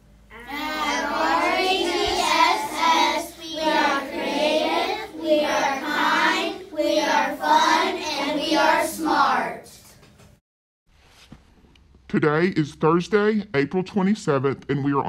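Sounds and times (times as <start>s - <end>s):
children chanting together: 0.3s - 9.7s.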